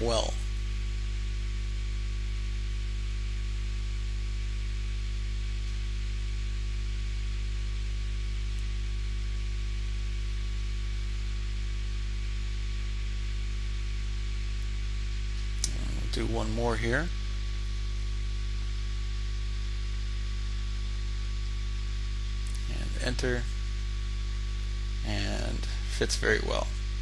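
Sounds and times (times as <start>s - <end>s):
low electrical hum: 0.0s - 27.0s.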